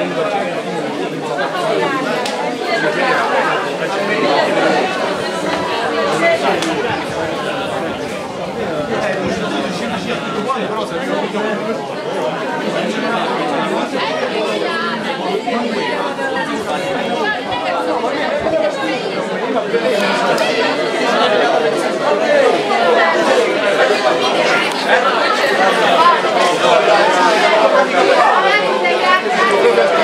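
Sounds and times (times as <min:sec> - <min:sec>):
crowd chatter: 0:00.0 - 0:30.0.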